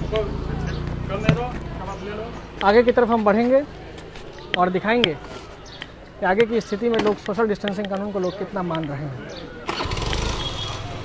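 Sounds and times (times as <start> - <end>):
background street voices: 0.0 - 11.0.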